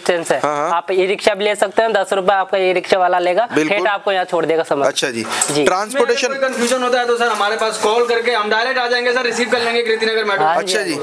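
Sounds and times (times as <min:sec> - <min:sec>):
man talking: 0:00.4 - 0:00.7, 0:03.6 - 0:03.9, 0:05.0 - 0:11.0.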